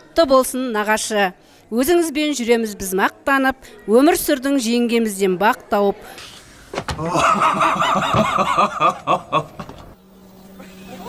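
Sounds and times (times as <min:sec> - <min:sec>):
person laughing: 0:07.0 - 0:09.7.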